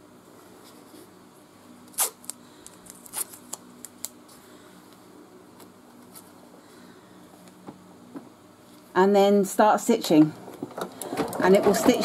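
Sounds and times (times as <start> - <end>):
faint steady hum: 0.0 - 12.0
masking tape being torn: 1.9 - 4.2.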